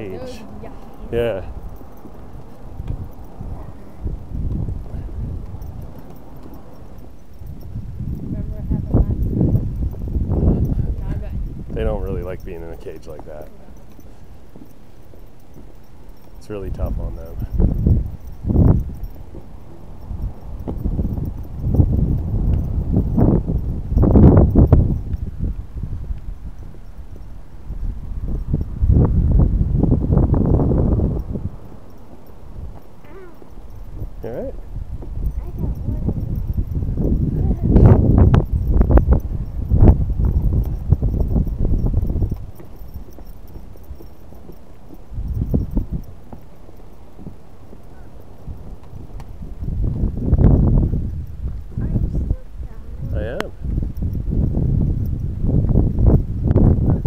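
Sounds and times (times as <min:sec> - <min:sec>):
wind rumbling on microphone: 0:00.0 - 0:57.0
footsteps on wooden boardwalk: 0:00.1 - 0:55.8.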